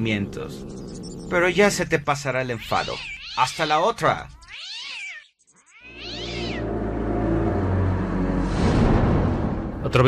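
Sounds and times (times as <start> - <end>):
cat yowling: 2.6 - 6.7.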